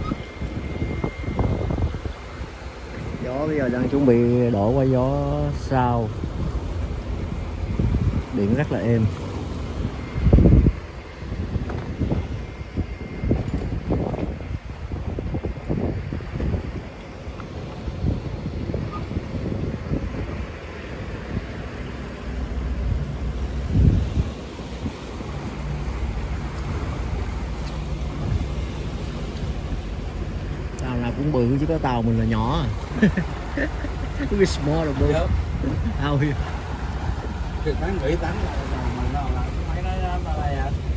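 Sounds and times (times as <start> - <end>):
outboard motor humming: 0.0 - 40.9
sea wash: 0.0 - 40.9
wind buffeting microphone: 0.0 - 40.9.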